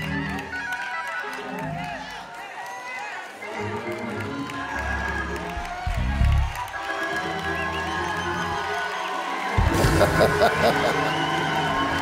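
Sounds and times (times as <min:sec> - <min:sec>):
congregation cheering and shouting: 0:00.0 - 0:12.0
worship band playing: 0:09.5 - 0:12.0.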